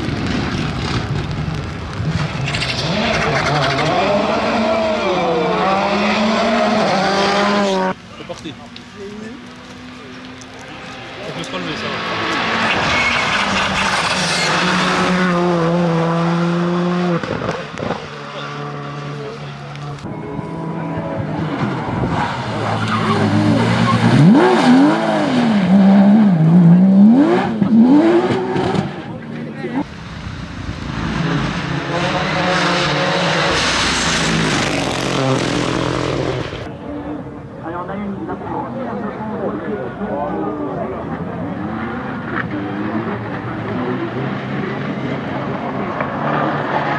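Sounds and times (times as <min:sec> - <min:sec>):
rally car accelerating: 0:00.0 - 0:29.9, 0:30.5 - 0:46.9
car passing: 0:00.0 - 0:46.9
car engine revving hard: 0:02.8 - 0:08.0, 0:11.5 - 0:19.6, 0:20.5 - 0:29.2, 0:30.8 - 0:36.7.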